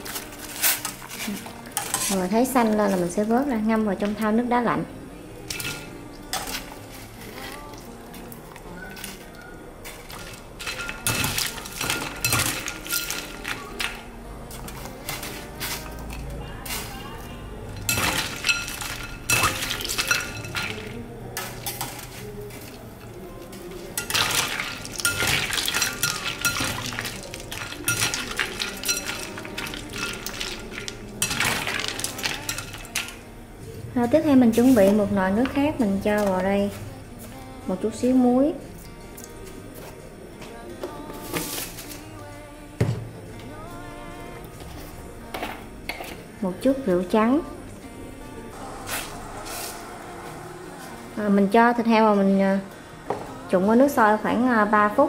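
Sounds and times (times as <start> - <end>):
ice cubes clinking against glass bowl: 9.9 - 14.0, 17.8 - 21.0, 24.0 - 33.2.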